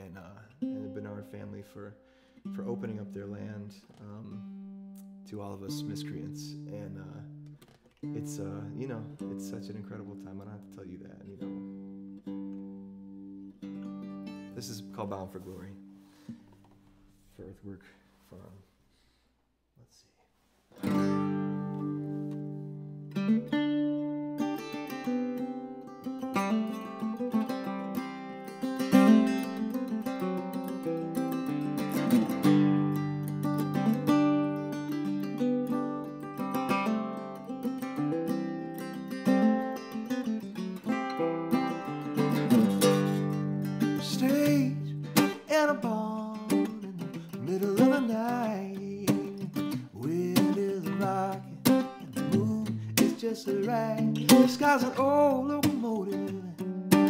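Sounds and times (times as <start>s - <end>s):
acoustic guitar strumming: 0.0s - 17.3s, 20.8s - 57.0s.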